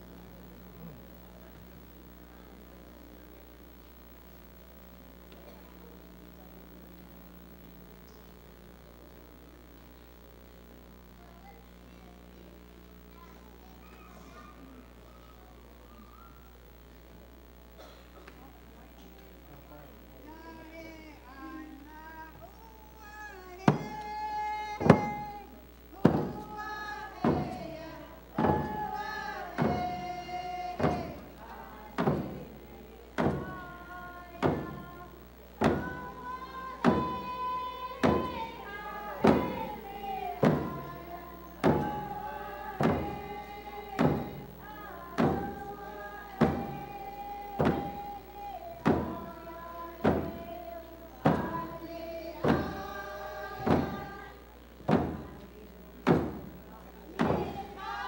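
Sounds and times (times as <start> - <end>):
slow steady drumbeat: 23.0 - 58.0
group singing in unison: 23.6 - 55.4, 57.1 - 58.0.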